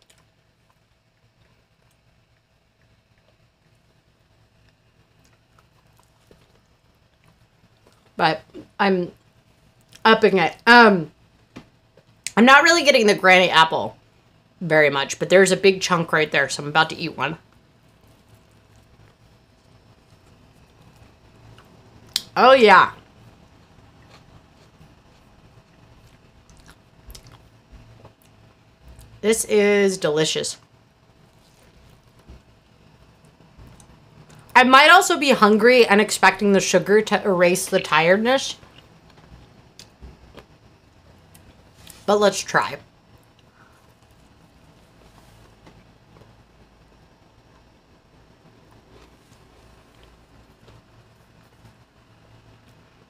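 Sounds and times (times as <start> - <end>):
faint chewing: 0.0 - 8.6, 9.2 - 10.0, 17.4 - 22.3, 23.0 - 29.2, 30.6 - 34.5, 38.6 - 42.1, 48.4 - 52.9
low room hum: 0.0 - 53.0
person chewing: 4.6 - 8.2, 23.5 - 29.1, 31.2 - 32.3, 48.6 - 51.8.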